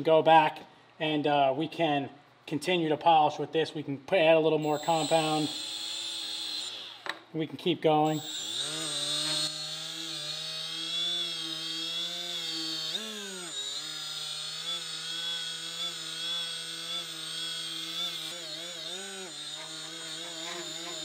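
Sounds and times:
die grinder whining: 0:04.6 - 0:07.3, 0:08.0 - 0:21.0.

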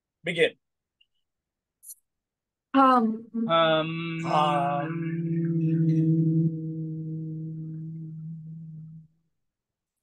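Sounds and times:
person humming low note: 0:03.4 - 0:09.2.

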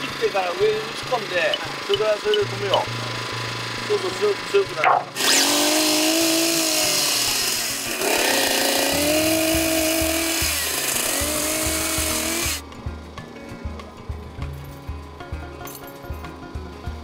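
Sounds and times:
chainsaw cutting wood: 0:00.0 - 0:12.6.

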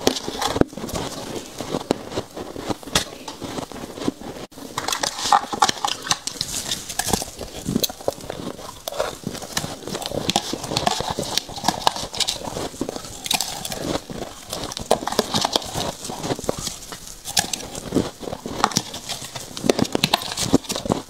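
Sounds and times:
chewing crunchy frost: 0:00.0 - 0:21.0.

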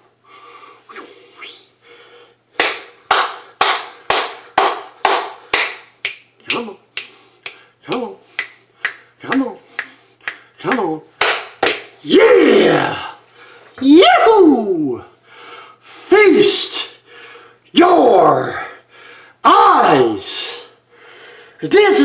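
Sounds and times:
sharp hand slaps: 0:02.6 - 0:12.0
person yelling: 0:12.0 - 0:13.2, 0:13.8 - 0:15.1, 0:19.5 - 0:20.3
person grunting: 0:12.1 - 0:13.2.

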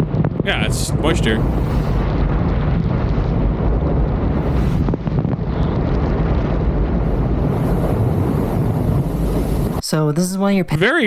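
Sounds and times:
wind rush buffeting microphone: 0:00.0 - 0:09.8.

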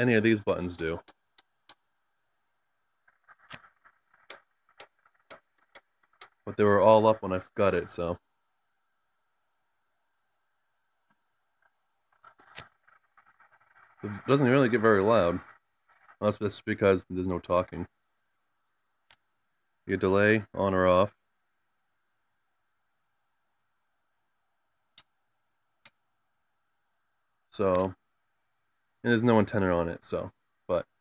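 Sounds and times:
radio scanner control clicks: 0:03.0 - 0:06.6, 0:11.1 - 0:14.8, 0:27.7 - 0:28.0.

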